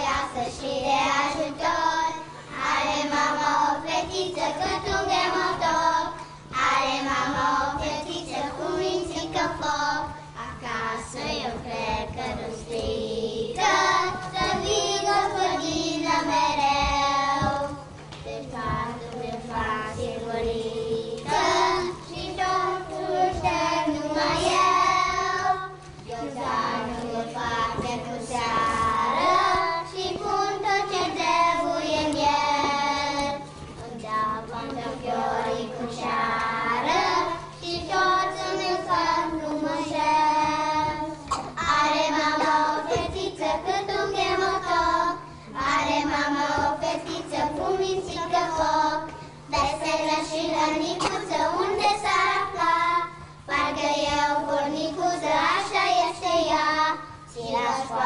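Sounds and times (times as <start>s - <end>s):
young children singing together: 0.0s - 58.0s.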